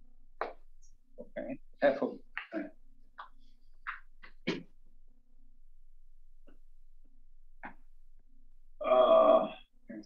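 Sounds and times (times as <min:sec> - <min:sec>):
man talking: 0:01.2 - 0:02.7
man saying uhh: 0:08.8 - 0:09.6.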